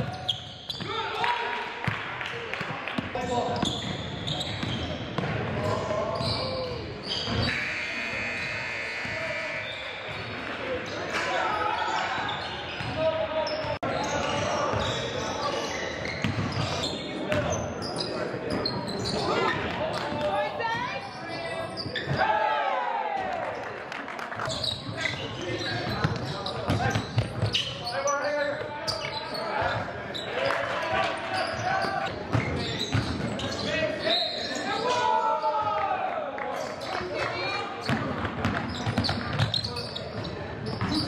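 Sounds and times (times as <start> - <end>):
players' voices and shouts: 0.0 - 23.6, 24.5 - 41.0.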